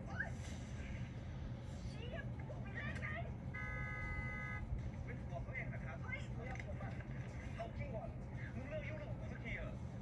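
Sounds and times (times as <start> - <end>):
steady multi-pitch tone: 3.5 - 4.7.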